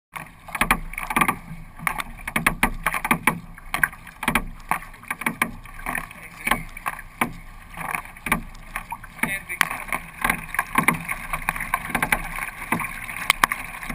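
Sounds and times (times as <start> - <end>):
kayak paddle splashing water: 0.1 - 13.9
water dripping: 0.2 - 13.9.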